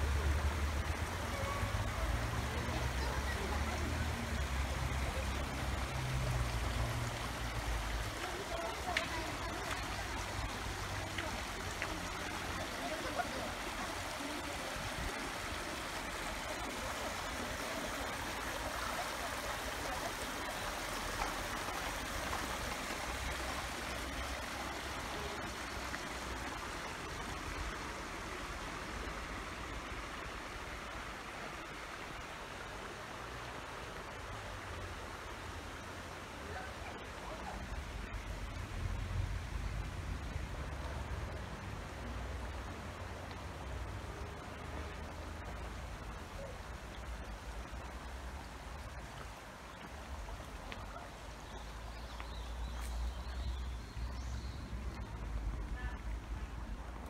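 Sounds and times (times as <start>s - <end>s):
stream running over stones: 0.0s - 57.0s.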